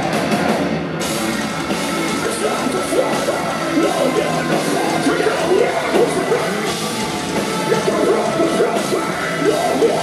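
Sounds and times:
distorted guitars: 0:00.0 - 0:10.0
drums: 0:00.0 - 0:10.0
yelled vocals: 0:01.6 - 0:10.0.

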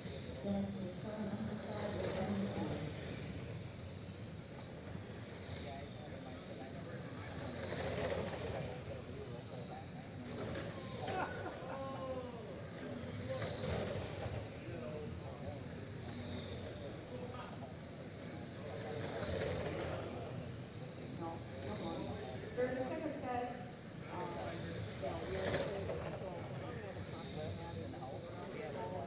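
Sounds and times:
indistinct talking: 0:00.0 - 0:29.0
radio-controlled cars racing: 0:00.0 - 0:29.0.

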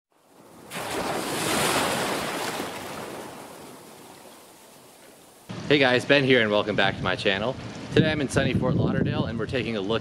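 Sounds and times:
wave breaking: 0:00.4 - 0:05.3.

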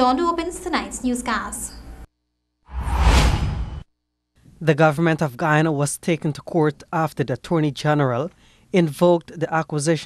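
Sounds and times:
whoosh with deep low end: 0:02.7 - 0:03.9.

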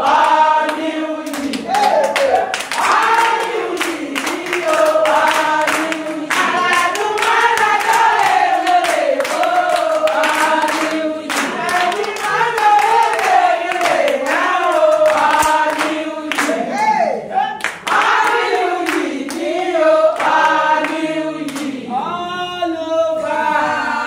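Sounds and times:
hand claps: 0:00.0 - 0:16.6, 0:17.6 - 0:21.8
women singing together: 0:00.0 - 0:24.0.

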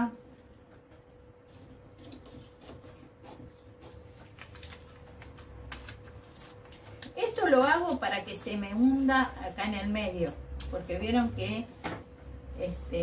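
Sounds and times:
scissors snipping paper: 0:01.6 - 0:08.3.

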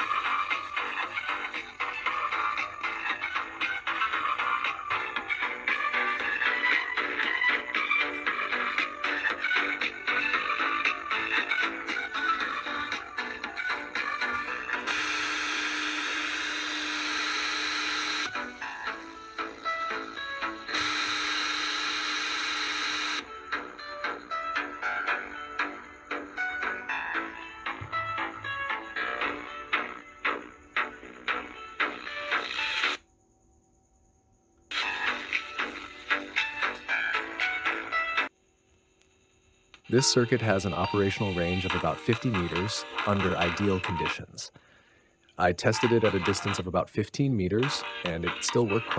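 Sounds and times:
thin music from small radio: 0:00.0 - 0:33.1, 0:34.7 - 0:38.4, 0:39.8 - 0:44.6, 0:45.4 - 0:48.9.

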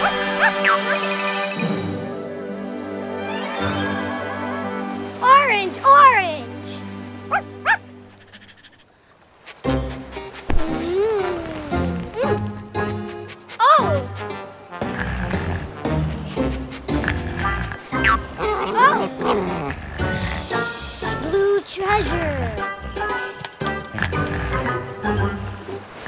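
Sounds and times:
cartoon puppy yips: 0:00.0 - 0:00.9, 0:07.3 - 0:08.8
faint background music: 0:09.6 - 0:26.0.

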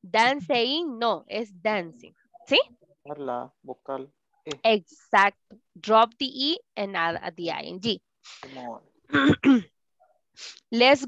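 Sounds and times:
woman clearing her throat: 0:09.1 - 0:09.7.

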